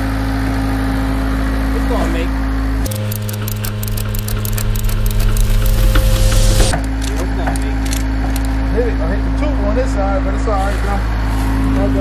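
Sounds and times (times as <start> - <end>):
ratchet strap clicking: 2.9 - 8.5
steady engine hum: 2.9 - 8.5.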